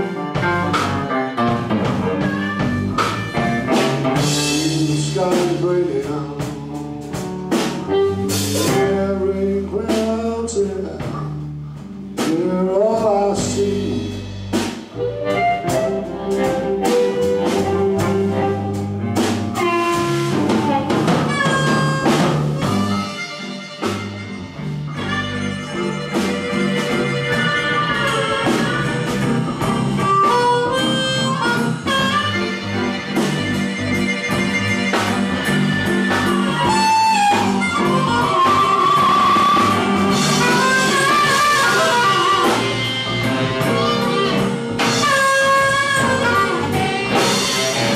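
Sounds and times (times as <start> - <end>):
wailing blues harmonica: 0.0 - 10.9, 12.2 - 47.9
double bass: 0.0 - 47.9
drum kit: 0.0 - 47.9
electric guitar: 0.0 - 47.9.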